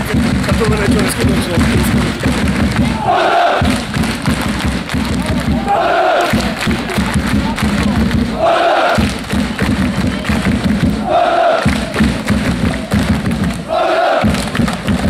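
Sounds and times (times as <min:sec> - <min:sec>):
football crowd chanting: 0:00.2 - 0:15.0.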